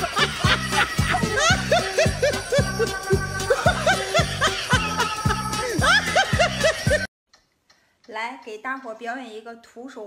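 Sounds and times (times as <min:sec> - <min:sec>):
woman speaking: 0:08.1 - 0:10.0.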